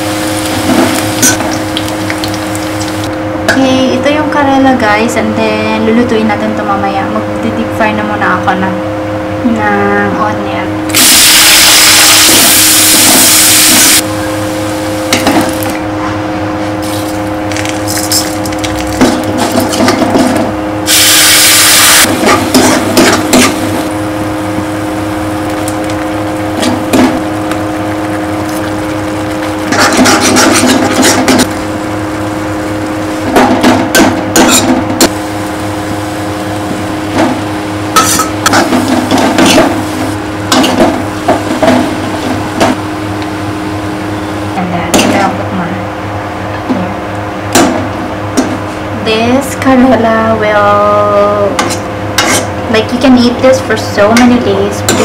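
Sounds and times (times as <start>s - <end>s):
onions sizzling in hot oil: 0.0s - 3.1s, 10.9s - 15.7s, 20.8s - 33.4s, 34.3s - 42.2s
steady hum: 0.0s - 55.0s
ladle scraping metal pan: 29.7s - 31.4s.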